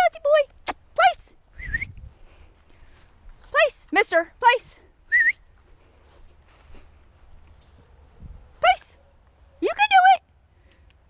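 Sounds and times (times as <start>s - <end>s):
faint low wind rumble: 0.0s - 11.0s
person whistling: 1.6s - 2.0s, 5.1s - 5.4s.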